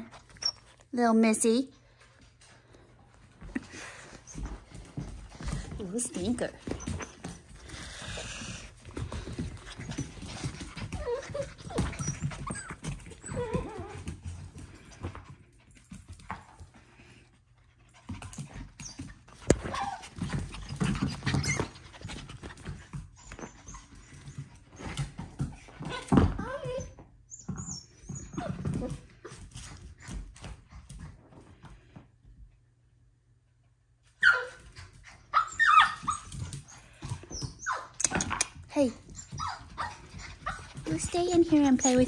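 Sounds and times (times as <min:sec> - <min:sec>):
puppy scuffling: 0:00.0 - 0:32.6, 0:34.0 - 0:42.0.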